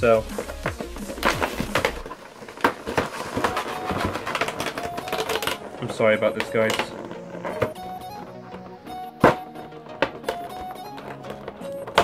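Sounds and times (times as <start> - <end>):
cardboard packaging clicks and rustles: 0.1 - 12.0.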